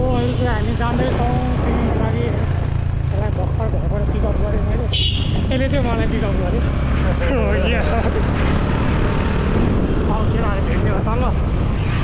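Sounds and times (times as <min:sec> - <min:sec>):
motorcycles passing: 0:00.0 - 0:12.0
street traffic rumble: 0:00.0 - 0:12.0.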